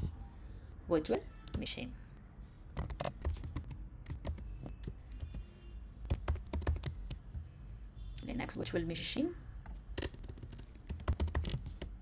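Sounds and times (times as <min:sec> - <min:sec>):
typing on computer keyboard: 0:02.8 - 0:05.4, 0:06.1 - 0:07.2, 0:10.0 - 0:12.0.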